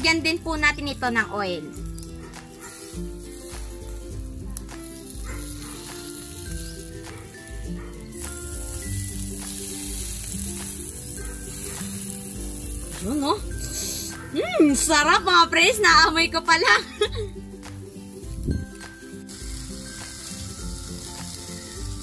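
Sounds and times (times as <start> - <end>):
background music: 0.0 - 22.0
meat sizzling on a grill: 0.0 - 22.0.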